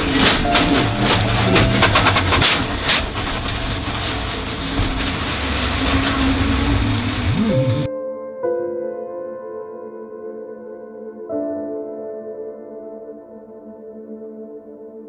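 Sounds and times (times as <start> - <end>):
soft ambient music: 0.0 - 4.8, 6.8 - 15.0
racing engine running hard: 0.0 - 7.9
sharp knocks and clatter: 0.0 - 7.9.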